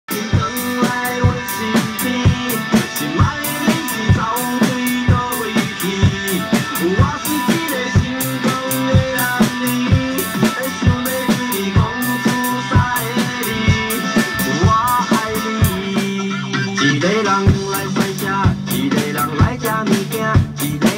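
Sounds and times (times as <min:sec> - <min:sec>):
backing song with guitar: 0:00.1 - 0:20.9
drum kit beat: 0:00.1 - 0:20.9.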